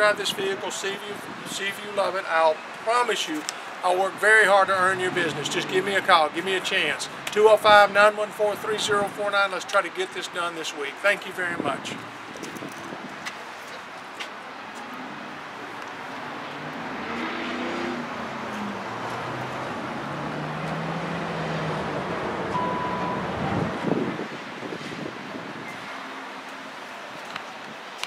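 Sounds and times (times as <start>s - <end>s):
vehicle engine passing by: 14.8s - 25.1s
short beep: 22.5s - 23.6s.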